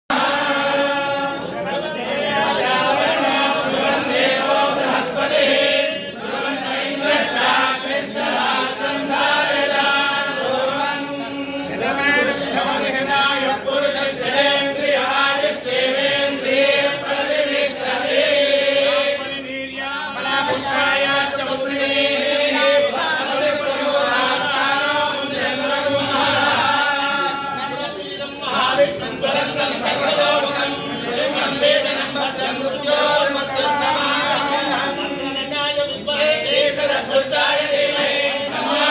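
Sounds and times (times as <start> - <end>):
priests chanting together: 0.0 - 38.9.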